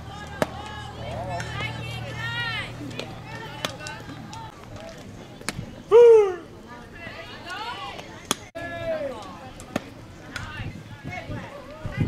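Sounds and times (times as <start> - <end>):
people shouting: 0.0 - 4.5.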